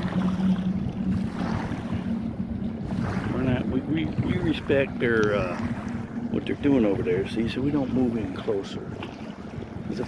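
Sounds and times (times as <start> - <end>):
steady low hum: 0.0 - 10.0
waves lapping at stone bank: 0.0 - 10.0
wind on microphone: 0.0 - 10.0.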